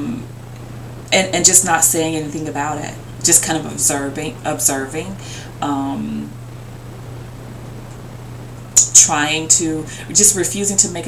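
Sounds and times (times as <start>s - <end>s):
woman speaking: 0.0s - 0.3s, 1.1s - 6.4s, 8.8s - 11.0s
low electrical hum with hiss: 0.0s - 11.0s.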